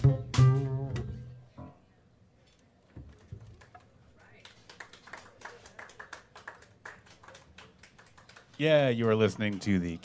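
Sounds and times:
audience clapping: 3.6 - 10.0
man speaking into a microphone: 8.6 - 10.0.

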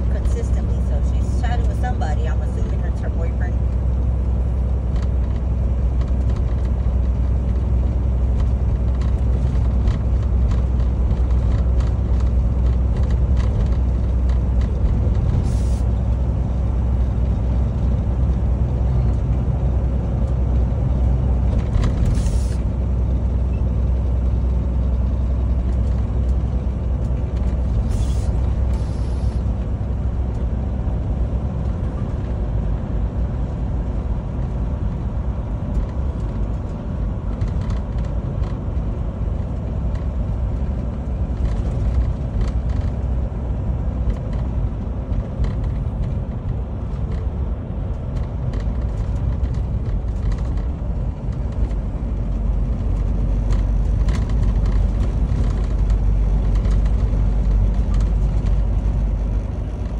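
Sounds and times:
road noise: 0.0 - 59.9
truck engine rumble: 0.0 - 59.9.

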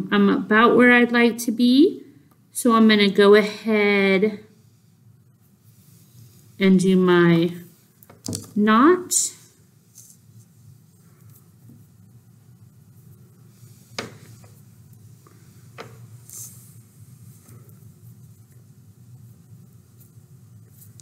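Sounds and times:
low steady hum: 0.0 - 21.0
faint handling of thread: 9.4 - 21.0.

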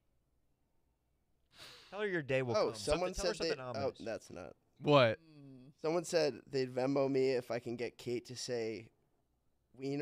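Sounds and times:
breathy sound: 1.5 - 2.0
man speaking: 1.9 - 8.9.

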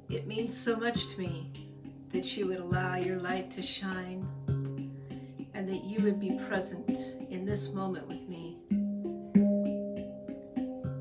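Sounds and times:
handpan notes ringing: 0.0 - 11.0.

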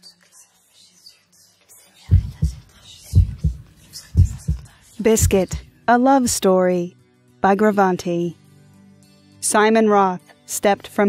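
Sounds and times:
heartbeat thumps: 2.1 - 5.7.

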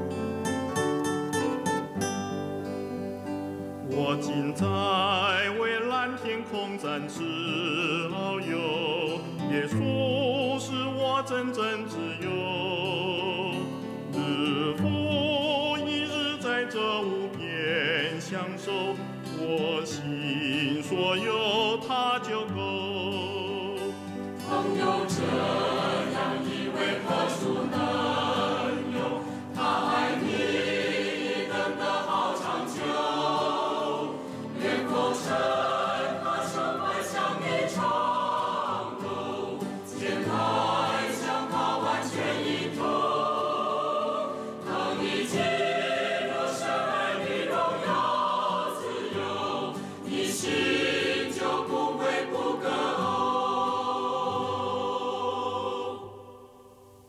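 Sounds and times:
choir singing a hymn: 0.0 - 57.0.

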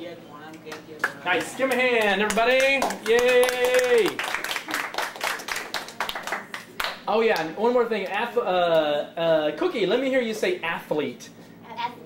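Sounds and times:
people clapping: 0.6 - 8.8.

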